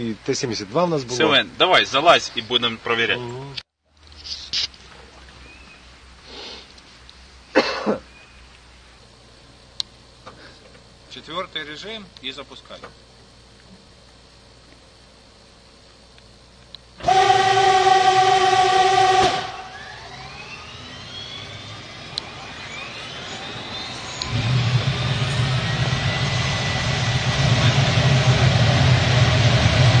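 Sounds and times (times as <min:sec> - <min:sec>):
engine turning over whine: 0:16.9 - 0:30.0
diesel engine rumbling: 0:17.0 - 0:30.0
steady multi-pitched tone: 0:17.2 - 0:30.0.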